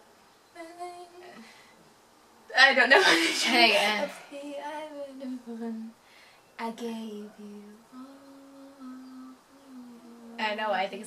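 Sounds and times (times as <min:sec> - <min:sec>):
girl humming a slow tune: 0:06.9 - 0:10.4.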